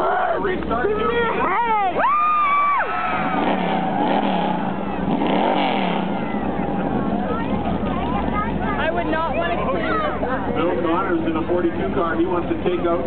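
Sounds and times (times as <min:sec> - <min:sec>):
crowd chatter: 0:00.0 - 0:13.0
race car engines running: 0:00.0 - 0:13.0.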